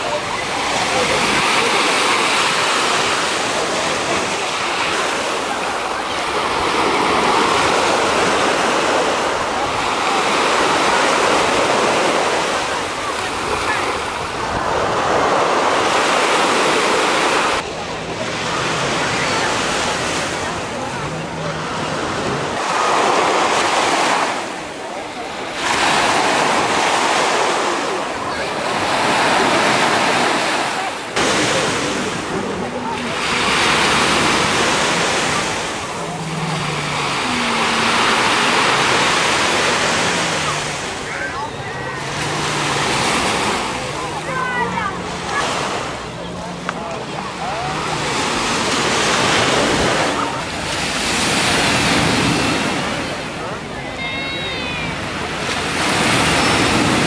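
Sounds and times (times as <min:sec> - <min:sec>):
faint voices of bathers: 0:00.0 - 0:57.0
sea waves breaking on shore: 0:00.0 - 0:57.0.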